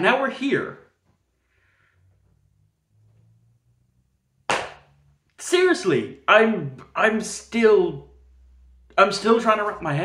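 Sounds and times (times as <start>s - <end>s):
hand slap: 4.5s - 4.9s.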